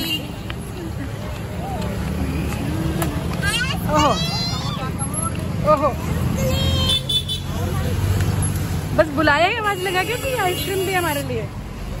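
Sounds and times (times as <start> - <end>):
people's voices: 0.0 - 11.6
road traffic rumble: 0.0 - 12.0.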